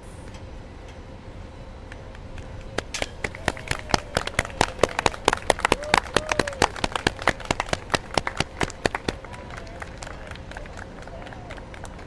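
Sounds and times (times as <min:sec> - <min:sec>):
group of people clapping: 0:02.8 - 0:12.0.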